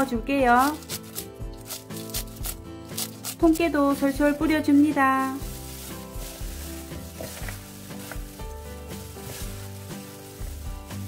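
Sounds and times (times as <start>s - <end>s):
light background music: 0.0s - 11.0s
gloved hands squishing wet salad: 0.6s - 11.0s.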